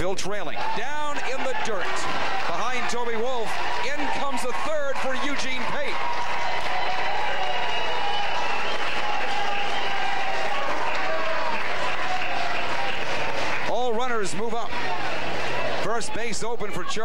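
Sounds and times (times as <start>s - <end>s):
crowd clapping and cheering: 0.0s - 17.0s
people shouting: 0.4s - 13.3s.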